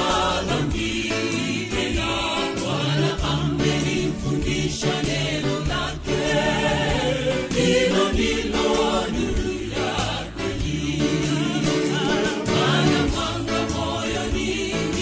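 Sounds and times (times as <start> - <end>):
choir singing gospel: 0.0 - 15.0
instrumental backing with beat: 0.0 - 15.0.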